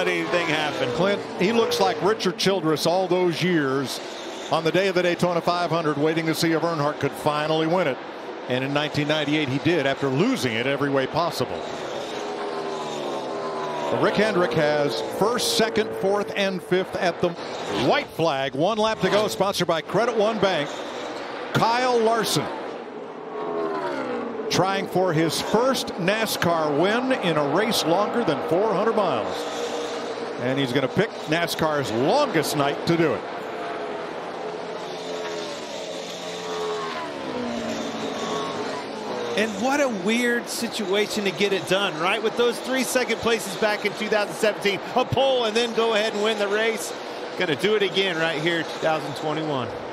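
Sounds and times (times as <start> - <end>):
race car engine passing by: 0.0 - 49.8.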